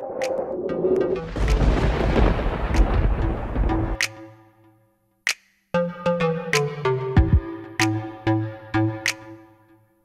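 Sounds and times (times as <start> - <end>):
deep booming rumble: 0.0 - 4.0.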